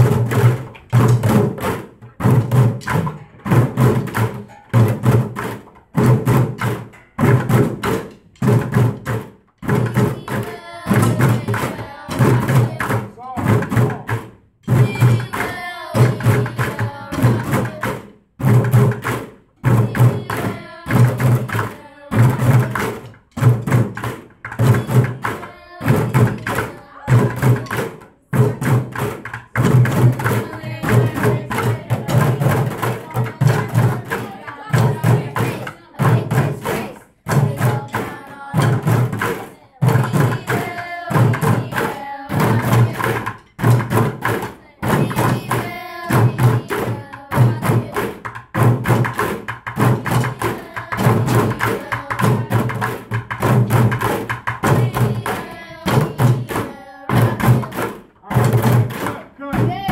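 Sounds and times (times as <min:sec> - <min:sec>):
children drumming on plastic buckets: 0:00.0 - 0:59.9.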